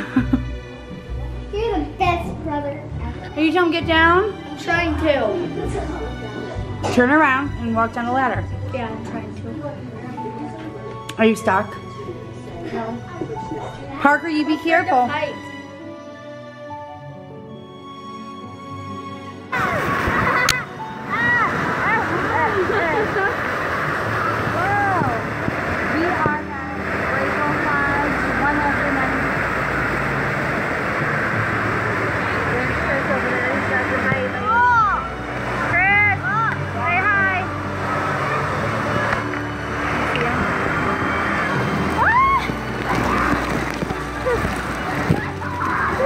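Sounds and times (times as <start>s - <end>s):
water rushing under a raft: 19.5s - 46.0s
riders shrieking and yelling: 41.9s - 46.0s.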